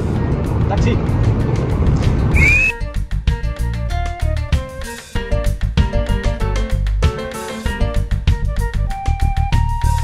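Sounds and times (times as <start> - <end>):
street traffic rumble: 0.0 - 2.7
short rising whistle: 2.3 - 2.8
upbeat cumbia music: 2.3 - 10.0.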